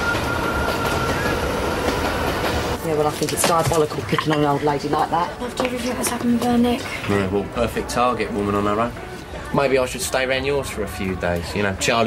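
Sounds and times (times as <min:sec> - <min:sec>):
train rumble and clatter: 0:00.0 - 0:03.4.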